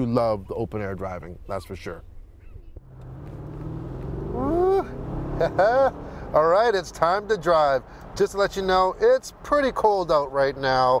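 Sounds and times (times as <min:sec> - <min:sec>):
car engine driving: 0:02.8 - 0:10.9
man calling out: 0:04.4 - 0:05.0.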